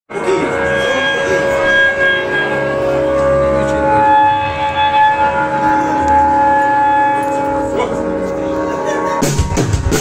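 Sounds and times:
bass guitar: 0.1 - 10.0
electric guitar chords: 0.1 - 10.0.

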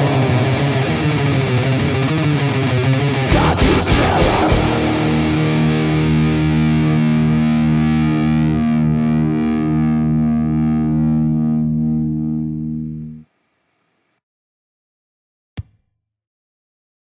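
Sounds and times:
distorted electric guitar chord: 0.0 - 13.2.

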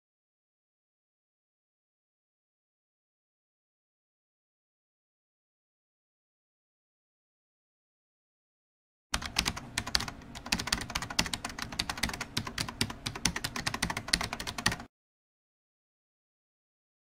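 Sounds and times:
rapid irregular clicking: 9.2 - 14.9.

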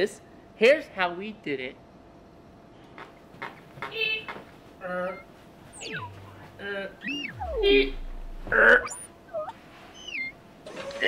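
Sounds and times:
man making high-pitched squeaks: 4.8 - 11.0.

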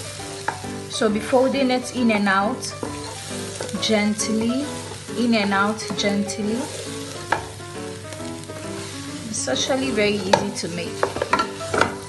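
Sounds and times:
spatula stirring in a pan: 0.0 - 12.0
spatula knocking against pan: 0.4 - 0.7, 7.3 - 7.6, 10.2 - 12.0.

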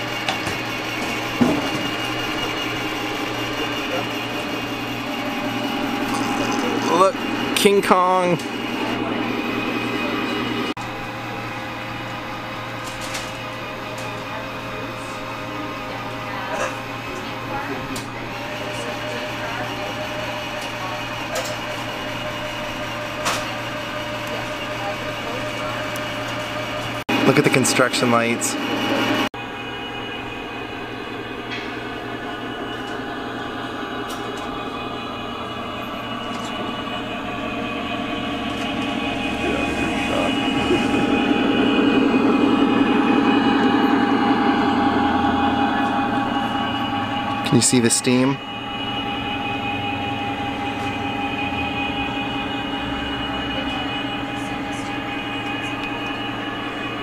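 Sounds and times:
model train mechanical hum: 0.0 - 57.0.

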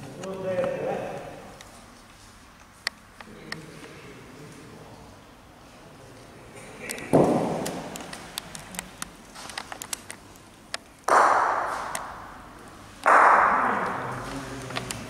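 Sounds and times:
heavy ball impacts: 7.1 - 8.0, 11.1 - 14.2.

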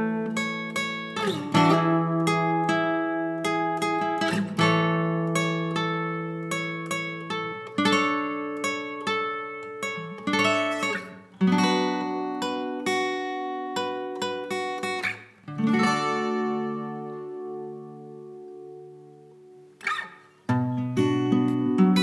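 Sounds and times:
acoustic guitar strumming chords: 0.0 - 22.0.

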